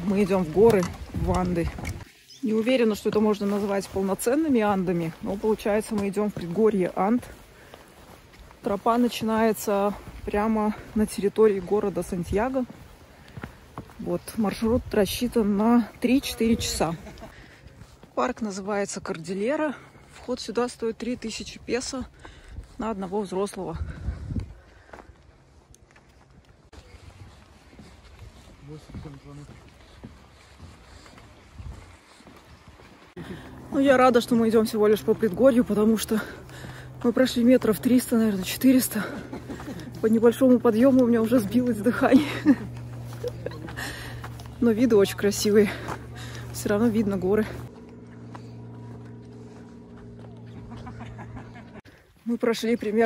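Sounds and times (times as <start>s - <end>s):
grit and stones crunching: 0.0s - 30.4s
footsteps on dirt trail: 0.0s - 53.0s
low engine-like hum: 32.5s - 52.0s.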